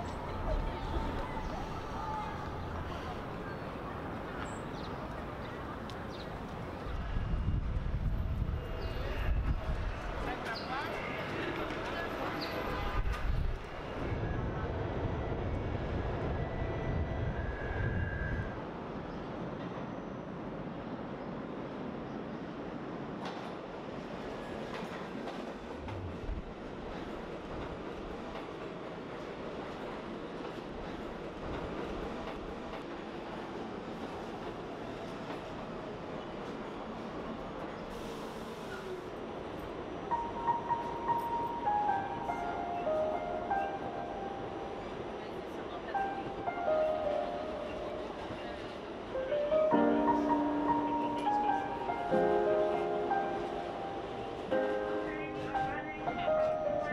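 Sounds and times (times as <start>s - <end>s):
subway train rumbling: 0.0s - 56.9s
descending piano notes: 40.0s - 56.9s.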